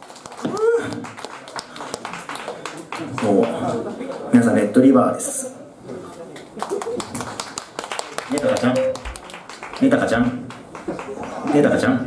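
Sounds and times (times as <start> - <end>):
small audience clapping: 0.0 - 4.5, 6.3 - 12.0.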